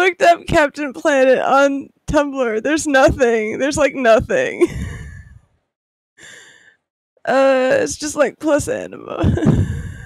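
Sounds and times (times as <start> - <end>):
person breathing: 6.2 - 6.9, 9.5 - 10.0.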